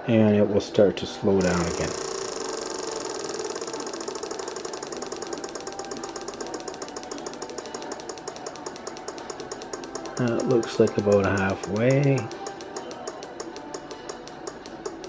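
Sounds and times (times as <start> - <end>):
relay chattering: 1.4 - 13.4.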